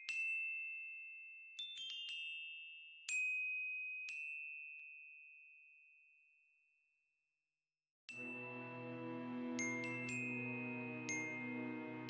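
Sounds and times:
bell-like chime notes: 0:08.1 - 0:12.0.

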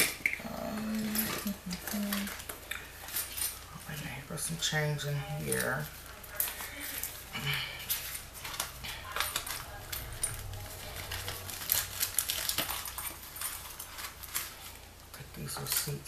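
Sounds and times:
handbag rustling: 0:05.0 - 0:15.0.

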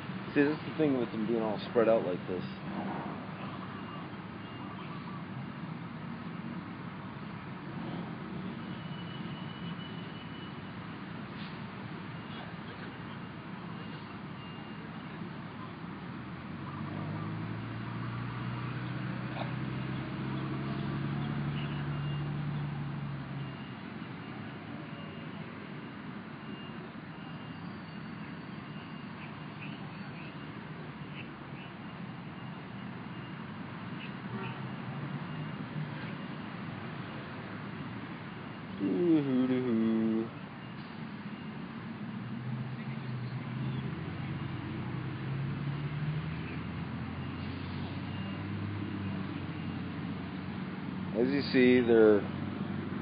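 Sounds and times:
vehicle engine passing: 0:16.2 - 0:23.4, 0:38.8 - 0:40.4, 0:42.2 - 0:53.0
faint repeating high tone: 0:38.8 - 0:40.3.

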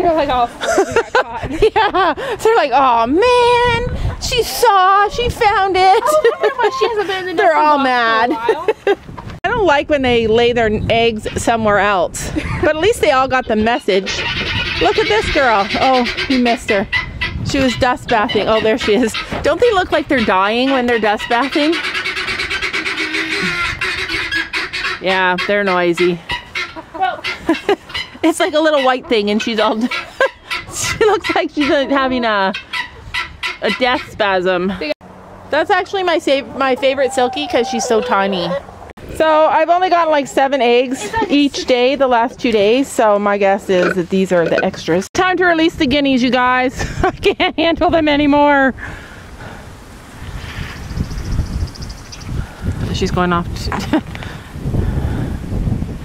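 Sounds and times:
wind buffeting microphone: 0:00.0 - 0:56.0
chickens clucking: 0:13.0 - 0:35.0, 0:35.7 - 0:38.9, 0:39.6 - 0:45.1
guinea fowl chattering calls: 0:14.0 - 0:34.2, 0:43.8 - 0:45.0.

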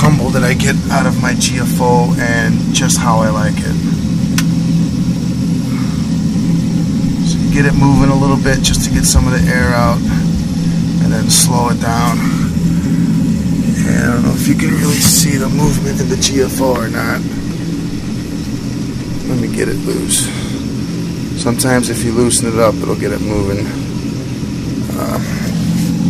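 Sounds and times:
submersible pumps running: 0:00.0 - 0:26.0.

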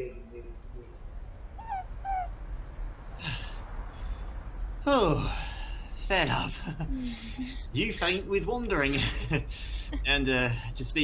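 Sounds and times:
crickets chirping: 0:00.0 - 0:10.7.

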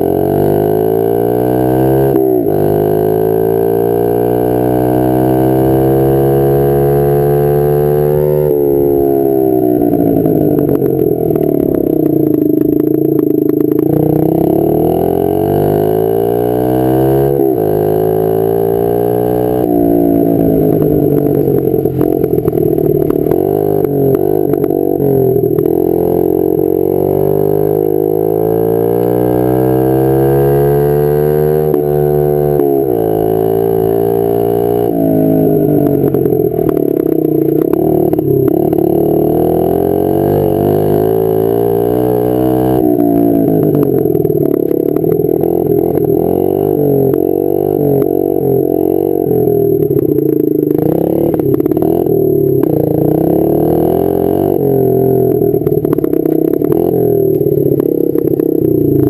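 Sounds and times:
small motorcycle engine revving: 0:00.0 - 0:59.0.

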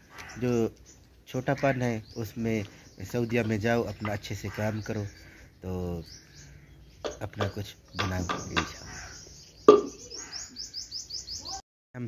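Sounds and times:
bird chirping: 0:00.0 - 0:11.6.

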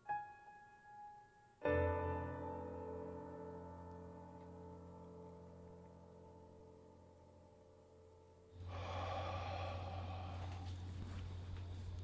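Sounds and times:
heavy mouth breathing: 0:08.6 - 0:11.0
steady low hum: 0:08.6 - 0:12.0.

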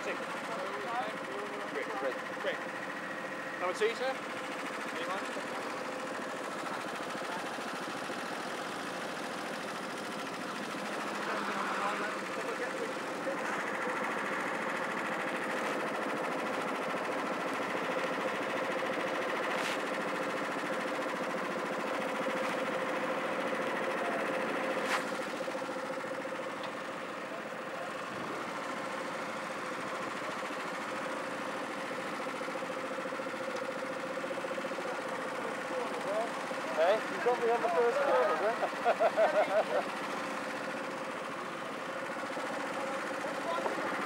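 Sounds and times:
kart engines idling: 0:00.0 - 0:44.0.

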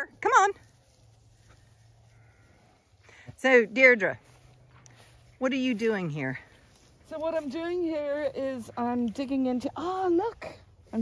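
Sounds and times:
distant sheep bleat: 0:01.7 - 0:02.9.

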